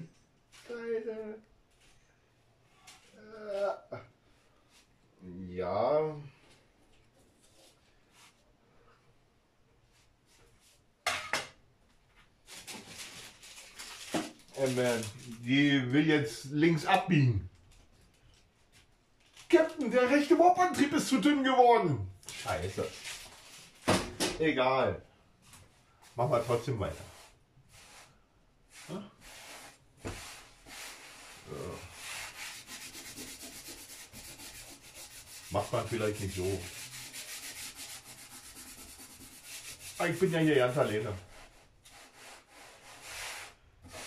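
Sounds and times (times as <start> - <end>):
hands kneading dough on board: 29.3 - 31.1.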